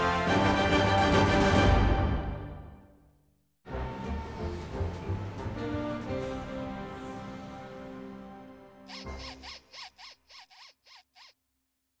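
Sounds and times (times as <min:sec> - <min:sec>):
background music: 0:00.0 - 0:03.0, 0:03.7 - 0:09.7.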